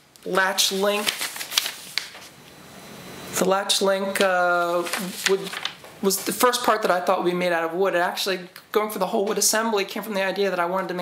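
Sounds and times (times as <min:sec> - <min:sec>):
paper rustling and crinkling: 0:00.3 - 0:02.4, 0:04.1 - 0:06.6.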